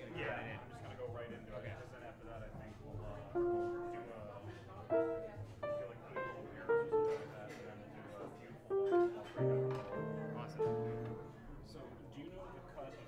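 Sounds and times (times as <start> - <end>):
grand piano notes and chords: 3.2 - 11.7.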